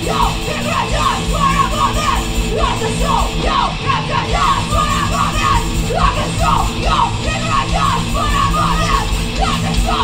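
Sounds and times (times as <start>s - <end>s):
metal band playing loud: 0.0s - 10.0s
person shouting vocals: 0.0s - 10.0s.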